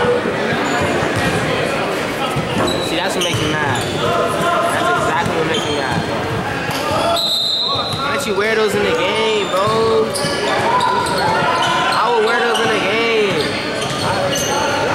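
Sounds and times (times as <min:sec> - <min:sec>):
echoing voices: 0:00.0 - 0:14.9.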